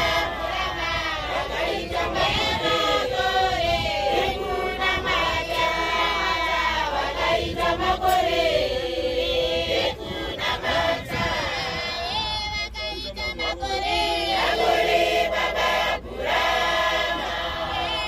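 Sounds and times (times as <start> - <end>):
women singing in chorus: 0.0 - 18.0.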